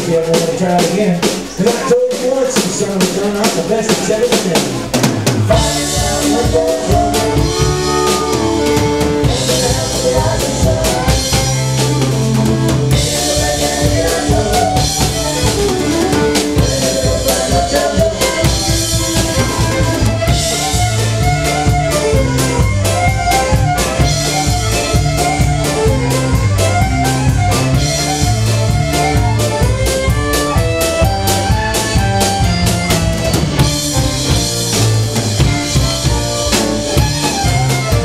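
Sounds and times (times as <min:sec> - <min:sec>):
bass notes: 0:00.0 - 0:38.0
drum kit beat: 0:00.0 - 0:38.0
keyboard: 0:00.0 - 0:38.0
electric guitar: 0:04.0 - 0:38.0
fiddle melody: 0:05.5 - 0:38.0.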